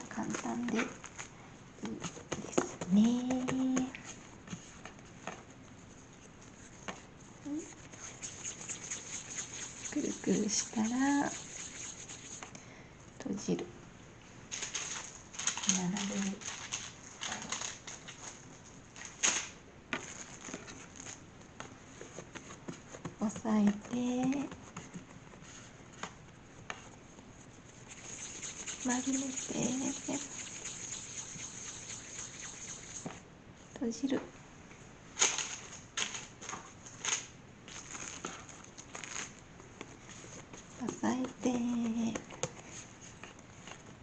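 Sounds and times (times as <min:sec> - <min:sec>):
hands rolling bread dough: 0:01.8 - 0:12.6, 0:19.9 - 0:33.2
person speaking: 0:09.7 - 0:12.4, 0:28.0 - 0:31.6.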